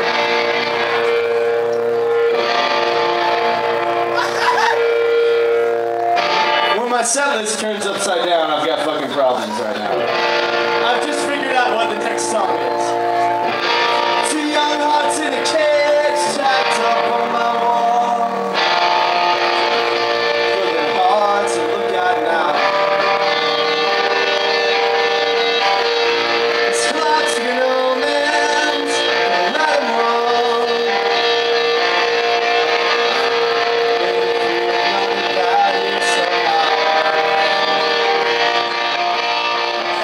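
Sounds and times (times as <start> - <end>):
electric guitar: 0.0 - 40.0
punk rock band playing: 0.0 - 40.0
man singing: 10.8 - 13.4, 14.0 - 23.4, 25.6 - 40.0.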